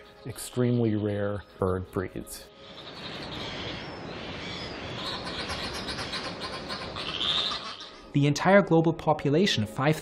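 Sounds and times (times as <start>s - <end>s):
albatross colony calling: 2.6s - 8.1s.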